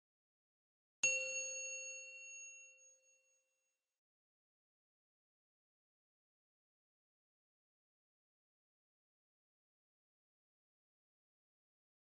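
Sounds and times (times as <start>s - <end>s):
bright bell ding: 1.0s - 3.4s.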